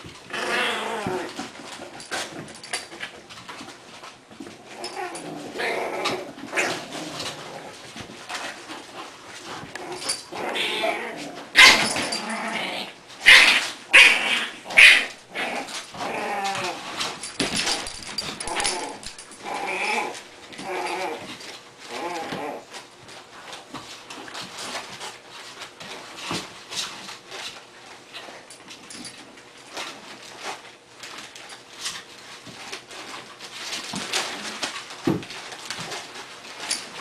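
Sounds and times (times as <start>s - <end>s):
puppies growling and whining: 0.0s - 23.2s.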